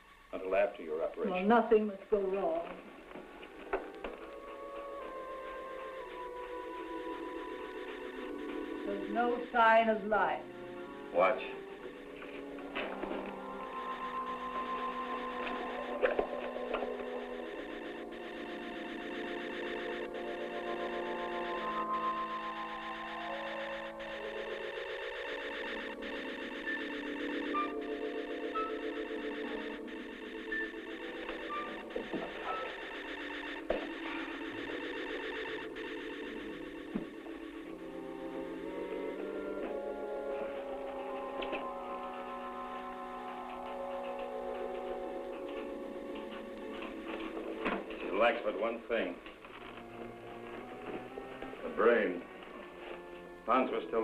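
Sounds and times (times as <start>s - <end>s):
eerie electronic music: 3.0s - 54.0s.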